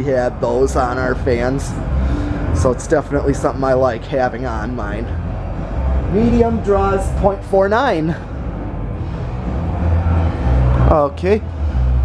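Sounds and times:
ceiling fan running: 0:00.0 - 0:12.0.

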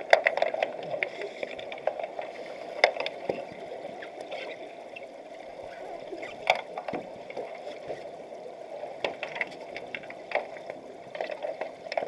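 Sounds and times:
underwater clicks and knocks: 0:00.0 - 0:04.6, 0:06.1 - 0:08.0, 0:09.0 - 0:12.0
muffled underwater water noise: 0:00.0 - 0:12.0.

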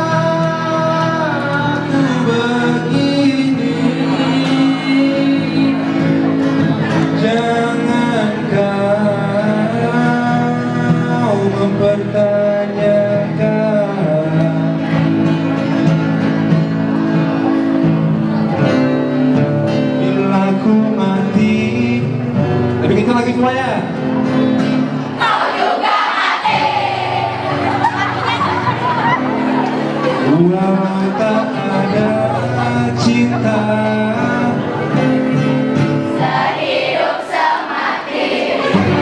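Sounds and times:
man singing: 0:00.0 - 0:15.1, 0:19.8 - 0:23.9, 0:30.0 - 0:36.0
strummed acoustic guitar: 0:00.0 - 0:39.0.

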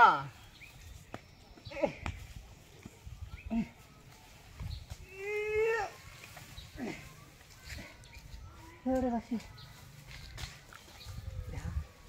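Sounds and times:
straw bundle rustling: 0:00.8 - 0:12.0.

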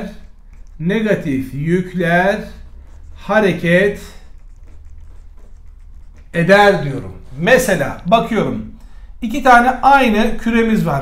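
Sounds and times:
marker scratching on whiteboard: 0:00.0 - 0:08.5
low steady hum: 0:00.0 - 0:11.0.

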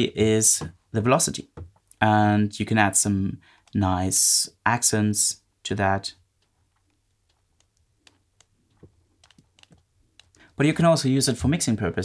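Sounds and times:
computer mouse clicks: 0:03.6 - 0:03.8, 0:06.4 - 0:10.5.

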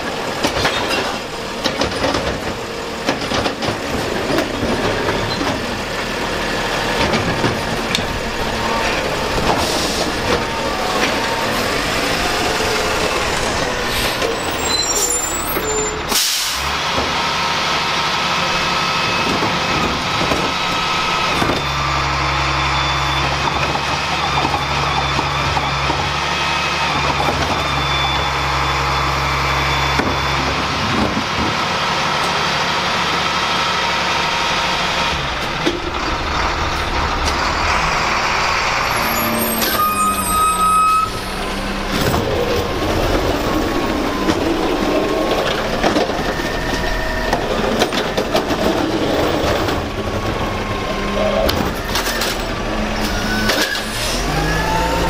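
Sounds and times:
diesel engines running: 0:00.0 - 0:55.0
hydraulic whine: 0:34.0 - 0:55.0.

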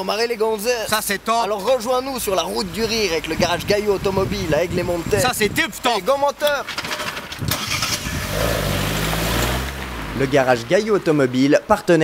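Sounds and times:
car engine starting: 0:06.5 - 0:11.4.

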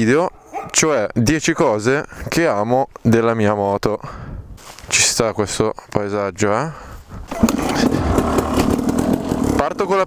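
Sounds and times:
two-stroke motorcycle engine running: 0:07.3 - 0:10.0.

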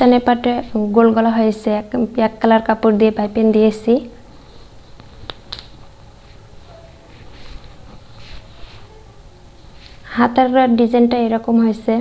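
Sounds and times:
fabric rustling: 0:04.3 - 0:10.1
fabric snapping: 0:05.0 - 0:05.8.

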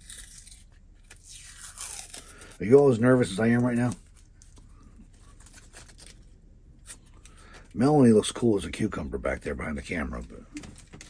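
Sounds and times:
paper backing crinkling and scraping: 0:00.0 - 0:08.1.

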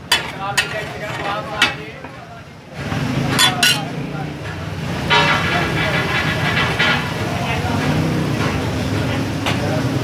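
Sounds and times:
traffic engines rumbling: 0:00.0 - 0:10.0.

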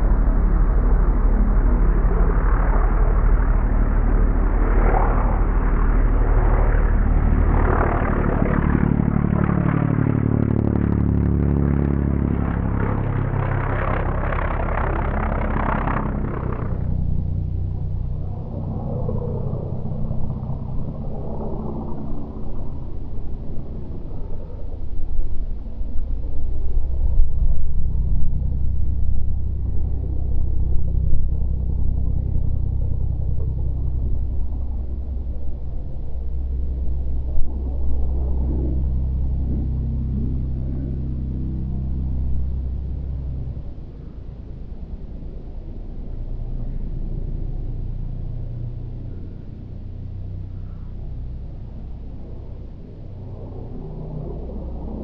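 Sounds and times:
propeller plane passing low: 0:00.0 - 0:55.0.

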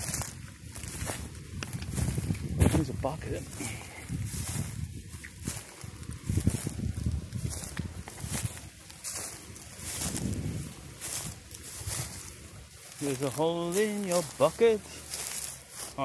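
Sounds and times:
footsteps crunching through leaves: 0:00.0 - 0:16.0.

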